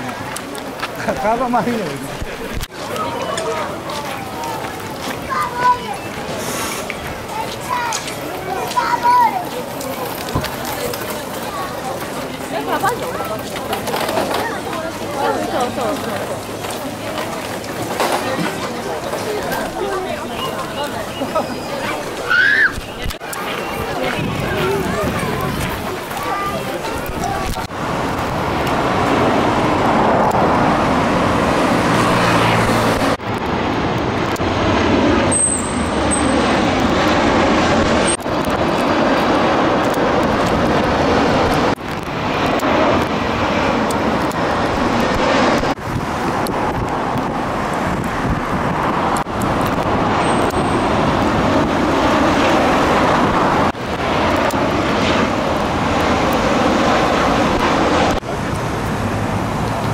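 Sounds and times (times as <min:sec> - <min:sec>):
jet airliner roar: 0:00.0 - 0:59.9
outdoor traffic noise: 0:00.0 - 0:59.9.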